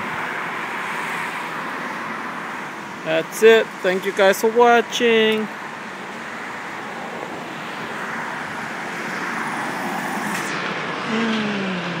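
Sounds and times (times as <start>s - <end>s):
vehicle passing: 6.1s - 12.0s
low falling tone: 10.2s - 12.0s.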